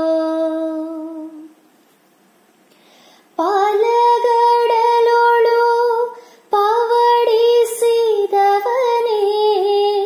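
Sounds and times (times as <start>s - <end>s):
faint breath: 2.7s - 3.4s, 6.2s - 6.5s.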